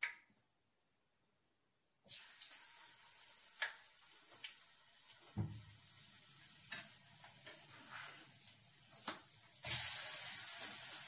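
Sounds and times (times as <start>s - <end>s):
food sizzling in a pan: 2.1s - 11.0s.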